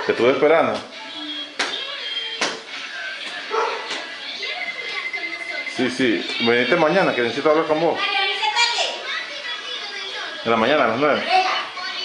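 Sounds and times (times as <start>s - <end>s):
dog barking: 3.5s - 3.9s.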